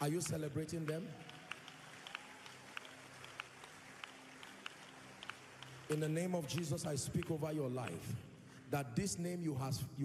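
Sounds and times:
hand claps: 0.0s - 8.2s.

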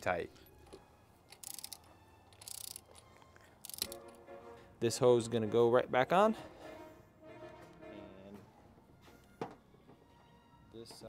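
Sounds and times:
ratchet wrench clicking: 1.3s - 4.0s.

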